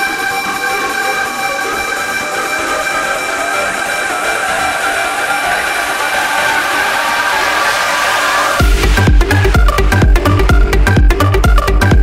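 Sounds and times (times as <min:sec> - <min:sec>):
held synth chord: 0:00.0 - 0:11.5.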